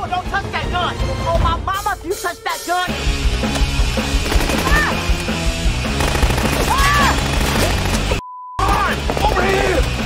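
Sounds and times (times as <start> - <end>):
film music score: 0.0 - 10.0
automatic gunfire: 4.2 - 5.1, 5.9 - 8.2.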